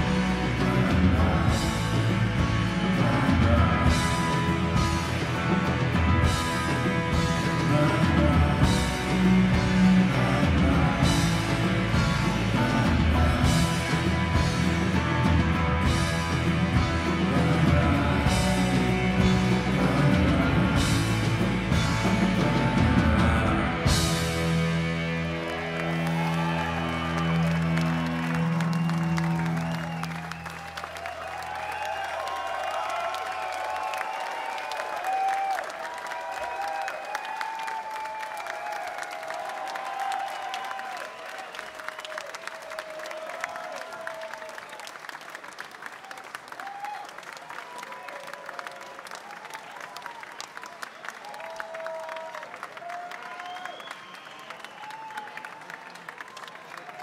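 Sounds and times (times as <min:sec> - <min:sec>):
crowd clapping and cheering: 0:00.0 - 0:57.0.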